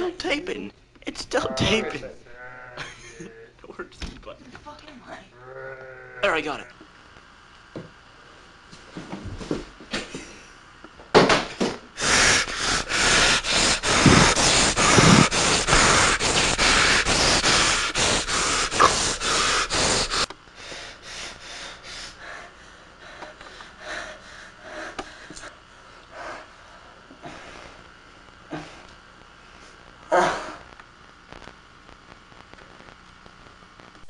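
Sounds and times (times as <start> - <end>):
person breathing hard and snorting: 12.0 - 27.9
soft rhythmic puffs of breath: 12.0 - 28.0.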